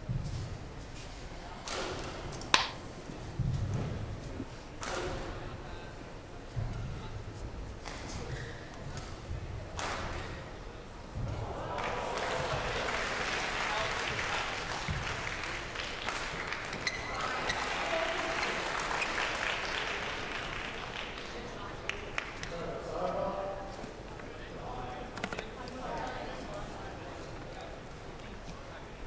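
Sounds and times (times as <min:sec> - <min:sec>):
crowd voices: 0:08.1 - 0:29.0
audience applauding: 0:11.4 - 0:22.4.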